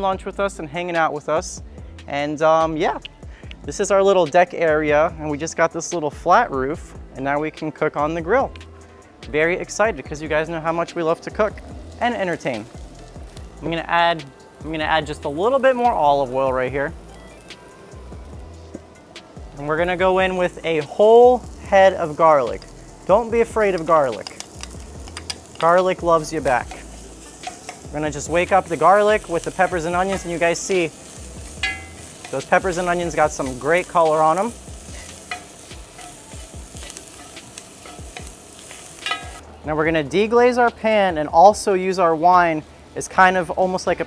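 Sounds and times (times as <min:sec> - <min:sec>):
quiet background music: 0:00.0 - 0:44.0
vegetables sizzling in oil: 0:10.2 - 0:39.5
spatula scraping pan: 0:26.5 - 0:39.4.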